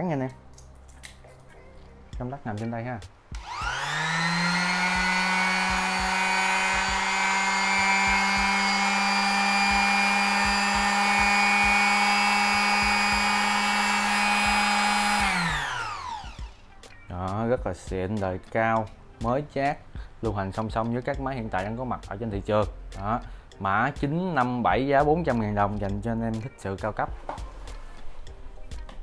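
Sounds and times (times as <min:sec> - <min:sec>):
finishing sander whining: 0:03.4 - 0:16.6.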